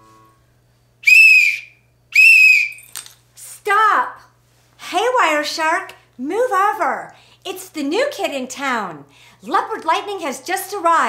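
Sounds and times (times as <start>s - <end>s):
police whistle blasts: 1.0s - 2.9s.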